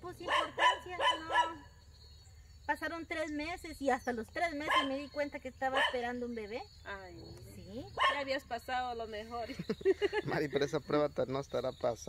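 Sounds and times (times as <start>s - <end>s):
woman speaking: 0.0s - 1.7s, 2.7s - 9.6s.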